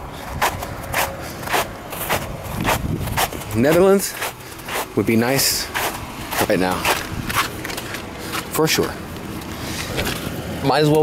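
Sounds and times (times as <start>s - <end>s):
footsteps in snow: 0.4s - 8.5s.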